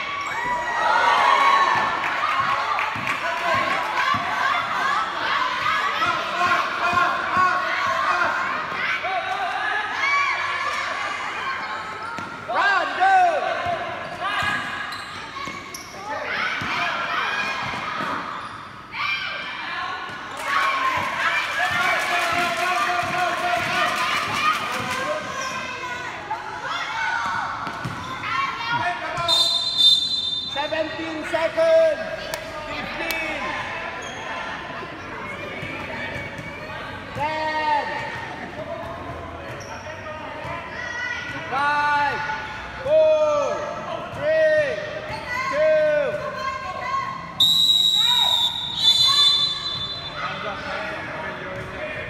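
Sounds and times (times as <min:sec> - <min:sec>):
basketball bouncing on court: 0:27.6 - 0:28.1.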